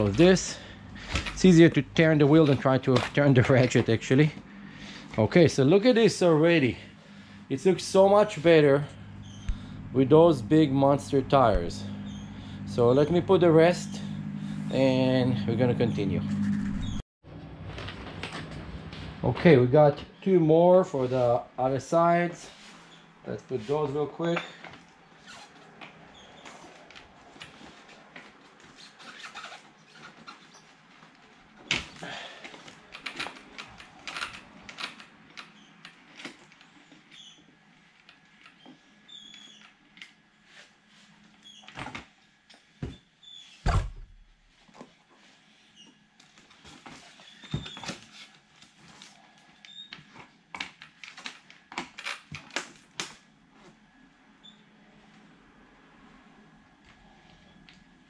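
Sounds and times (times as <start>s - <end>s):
loud thump: 43.6s - 44.2s.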